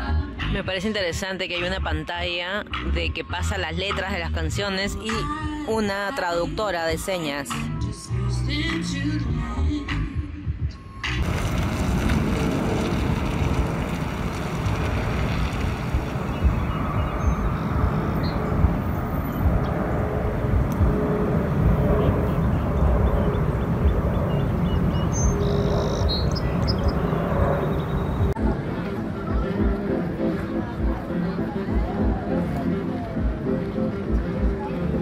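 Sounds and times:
outdoor rushing noise: 11.0 - 35.0
flickering low rumble: 11.1 - 35.0
bird chirps: 16.3 - 18.5, 22.3 - 28.3.

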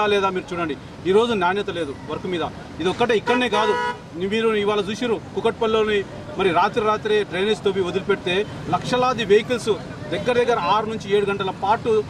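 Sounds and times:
man speaking into microphones: 0.0 - 12.0.

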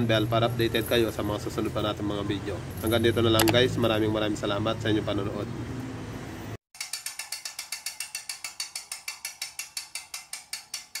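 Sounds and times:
ratchet clicking: 6.8 - 11.0.

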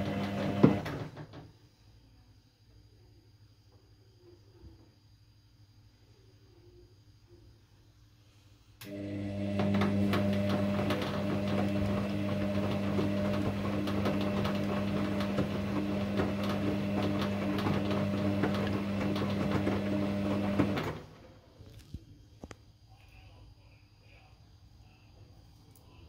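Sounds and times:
washing machine motor humming: 0.0 - 1.4, 8.8 - 21.4.

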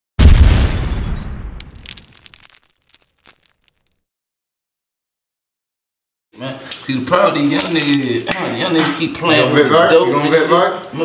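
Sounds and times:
explosion deep boom: 0.2 - 2.0
scattered crackles: 1.3 - 4.0.

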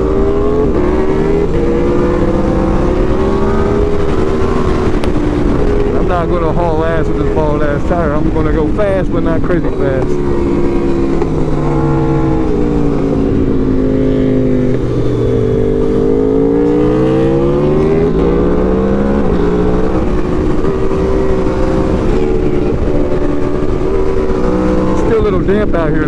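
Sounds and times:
wind rush: 0.0 - 25.8
motorcycle engine: 0.0 - 26.0.

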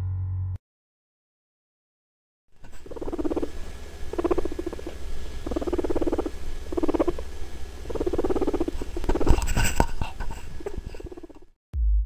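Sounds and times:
low hum: 0.0 - 0.6
guinea pig purring: 2.6 - 11.5.

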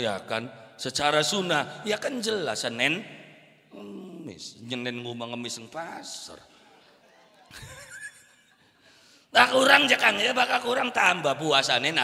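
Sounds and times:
faint laughter: 6.6 - 8.9.

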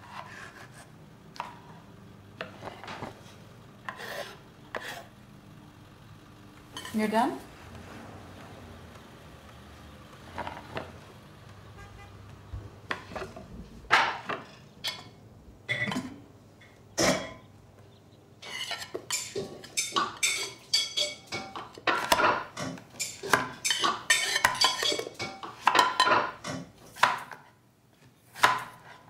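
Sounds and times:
dishes and cutlery clinking: 12.9 - 17.5, 18.4 - 26.7.

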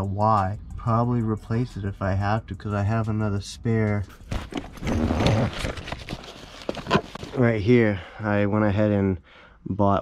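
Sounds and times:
camera handling noise: 4.3 - 7.4
rummaging in fabric tool bag: 4.3 - 7.4.

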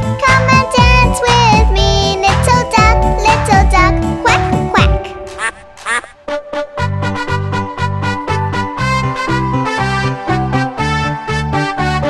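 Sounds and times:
bouncy children's song music: 0.0 - 12.0
cartoon duck quacks: 5.4 - 6.2.

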